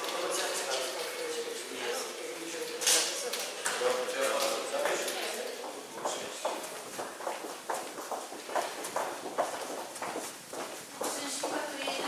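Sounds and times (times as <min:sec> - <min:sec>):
footsteps on hard floor: 0:05.7 - 0:12.0.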